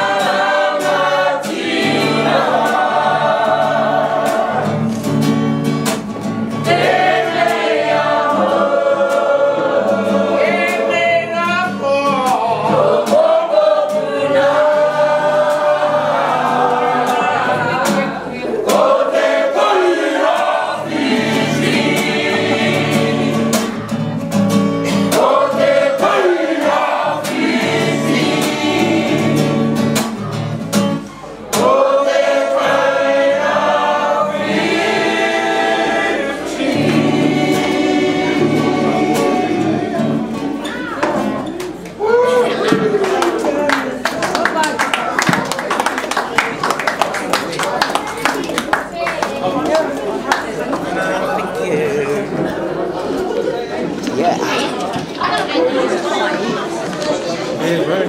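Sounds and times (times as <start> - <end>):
strummed guitar: 0.0 - 41.9
group singing: 0.0 - 43.7.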